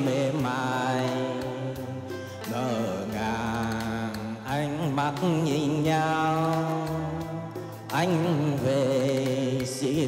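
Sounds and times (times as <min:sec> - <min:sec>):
instrumental accompaniment: 0:00.0 - 0:10.0
man singing with vibrato: 0:00.0 - 0:10.0.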